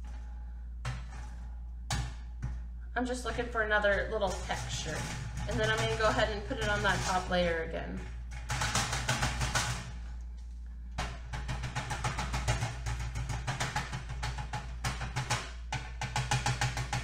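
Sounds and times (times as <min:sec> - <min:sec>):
felt pad tapping on metal: 0:11.0 - 0:17.0.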